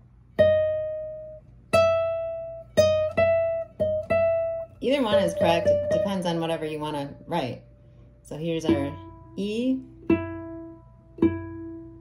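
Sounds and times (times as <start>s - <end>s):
classical guitar plucked notes: 0.4s - 7.6s, 8.6s - 12.0s.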